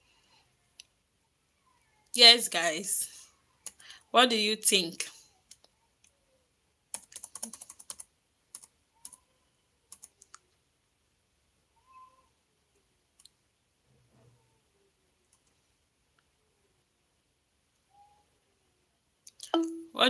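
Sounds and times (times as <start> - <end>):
typing clicks: 6.9 - 9.2, 9.9 - 10.4.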